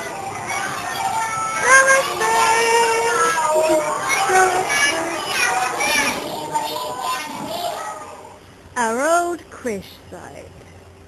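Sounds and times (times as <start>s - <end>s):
young children singing: 0.0s - 8.4s.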